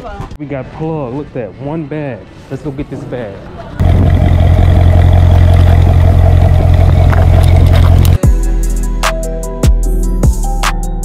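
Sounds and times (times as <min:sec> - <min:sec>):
car exhaust rumble: 0:03.8 - 0:08.2
music with drum beat: 0:08.2 - 0:11.0.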